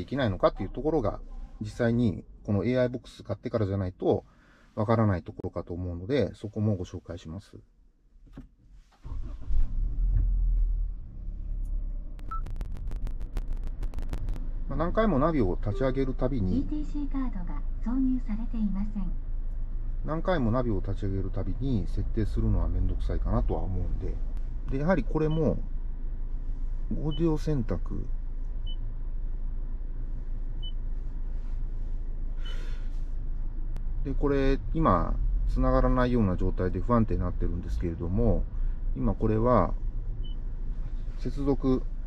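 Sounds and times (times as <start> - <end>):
car engine starting and idling: 8.2 - 42.0
short beep: 12.2 - 12.8, 15.7 - 16.3
sharp clicks: 12.2 - 14.4
short high electronic beep: 15.7 - 16.2.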